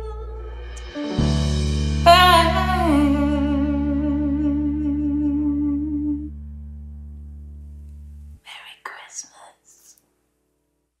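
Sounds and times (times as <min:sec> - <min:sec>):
woman whispering: 0:08.4 - 0:10.0.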